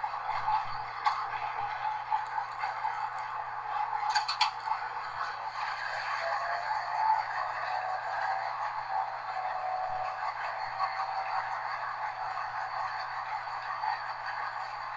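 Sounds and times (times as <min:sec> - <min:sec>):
train wheels rumbling on rail: 0:00.0 - 0:14.9.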